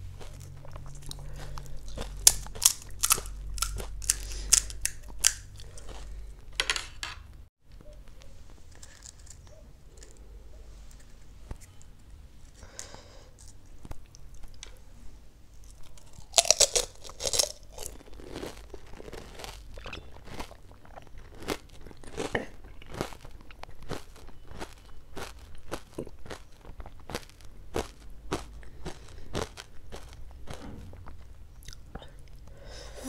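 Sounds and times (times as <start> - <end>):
crunchy chewing: 0.0 - 6.4, 7.7 - 14.8, 15.5 - 32.5
crunchy snack bitten into: 0.2 - 6.2, 15.6 - 31.8.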